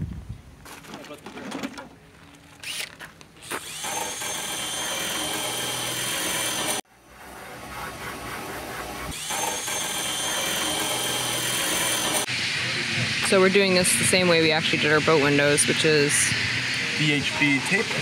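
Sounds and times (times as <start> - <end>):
cordless drill on metal: 2.6 - 6.8, 9.1 - 12.3.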